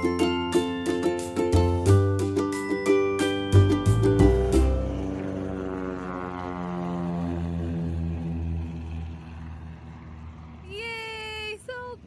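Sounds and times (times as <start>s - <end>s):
propeller airplane flying past: 0.0s - 12.0s.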